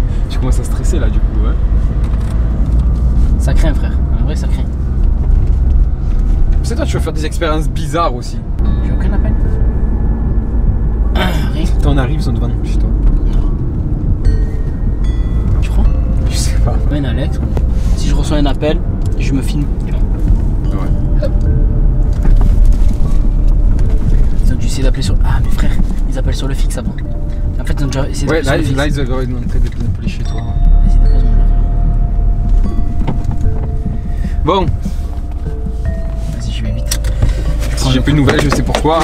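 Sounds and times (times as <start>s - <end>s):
car engine and road rumble: 0.0s - 39.0s
high electronic tones: 30.1s - 37.7s.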